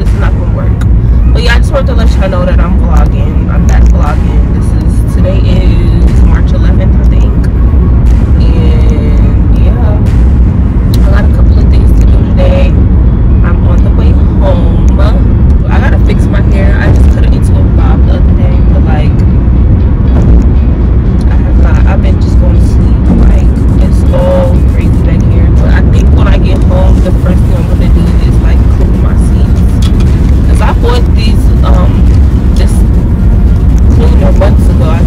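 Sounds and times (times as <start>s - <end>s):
woman's voice: 0.0s - 7.5s, 8.3s - 10.2s, 10.9s - 12.8s, 13.4s - 19.2s, 21.2s - 33.0s, 33.8s - 35.0s
car road and engine rumble: 0.0s - 35.0s.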